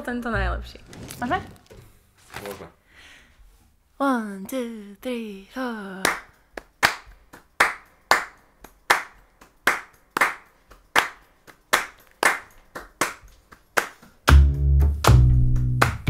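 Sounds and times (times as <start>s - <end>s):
woman clapping hands in rhythm: 6.0s - 16.0s.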